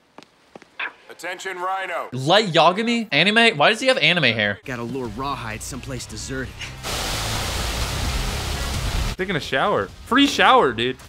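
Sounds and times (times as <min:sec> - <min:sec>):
water jet gushing and spraying: 0:06.8 - 0:09.2.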